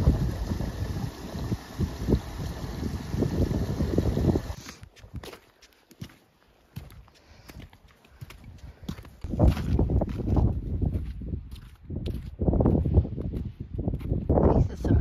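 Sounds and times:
footsteps crunching on snow: 4.6s - 14.2s.

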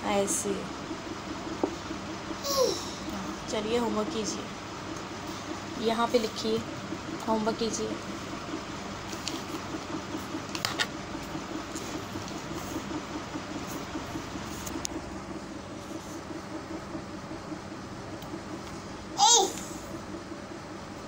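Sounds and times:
mechanical room hum with pulsing: 0.0s - 21.0s.

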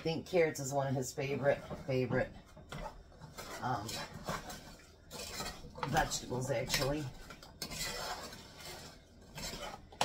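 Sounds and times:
spoon scraping a saucepan: 0.0s - 10.0s.

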